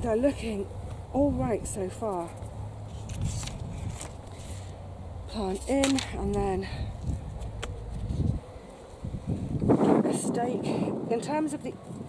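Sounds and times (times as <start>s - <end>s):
bamboo cane clicks and rustles: 2.0s - 8.5s
wind buffeting microphone: 2.7s - 4.6s, 5.2s - 12.0s.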